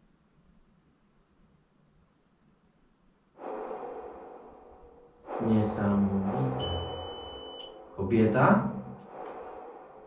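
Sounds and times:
electronic multi-pitch tone: 5.4s - 7.8s.

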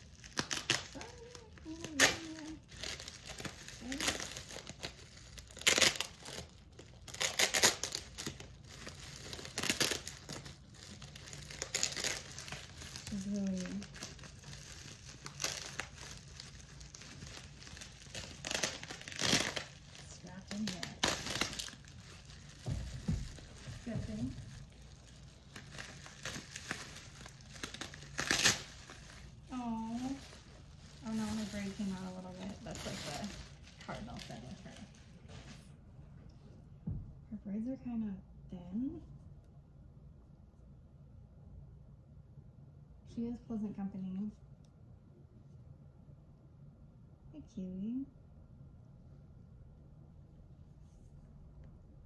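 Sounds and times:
bubble wrap crinkling: 0.0s - 35.9s.

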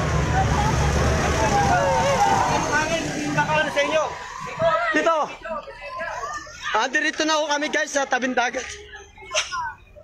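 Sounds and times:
large vehicle engine passing: 0.0s - 4.6s
people calling: 0.0s - 10.0s.

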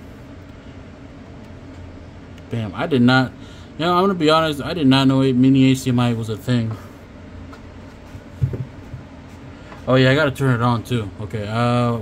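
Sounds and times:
low room hum: 0.0s - 12.0s
handling noise: 7.5s - 9.9s
low thump on desk: 8.4s - 9.0s.

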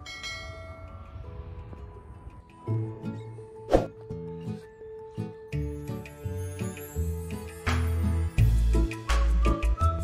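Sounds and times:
bell-like chime: 0.0s - 1.3s
soft background music: 0.0s - 10.0s.

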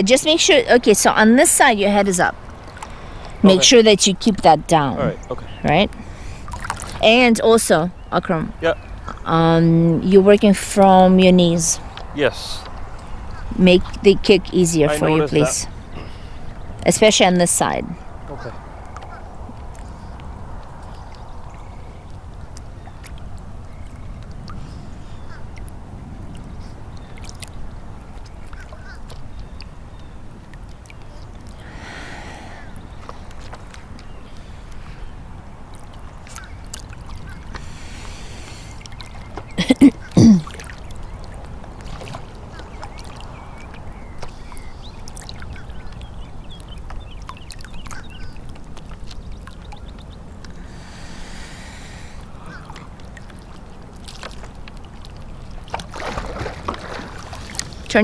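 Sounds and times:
water lapping and splashing: 0.0s - 58.0s.

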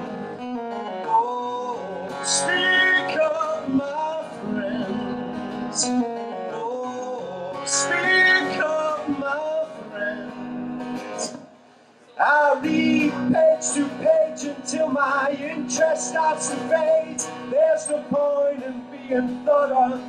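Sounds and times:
strummed acoustic guitar: 0.0s - 20.0s
man singing: 0.9s - 11.5s, 12.1s - 20.0s.

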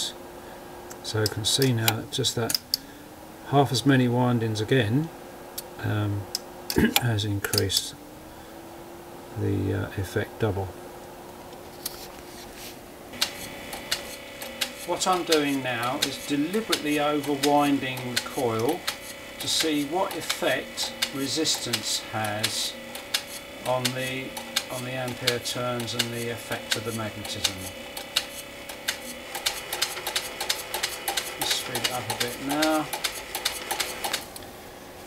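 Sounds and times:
click: 0.9s - 2.8s
irregular sharp clicks: 0.9s - 2.8s, 13.1s - 34.5s
electric motor whining: 13.1s - 34.5s.

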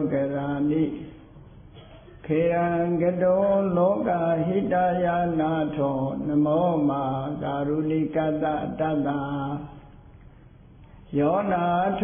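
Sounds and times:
man chanting: 0.0s - 1.3s, 2.2s - 10.0s, 11.1s - 12.0s.

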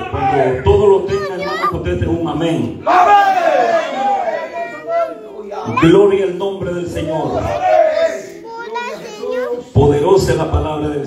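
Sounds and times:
high-pitched voices calling out: 0.0s - 1.9s, 8.0s - 9.8s.

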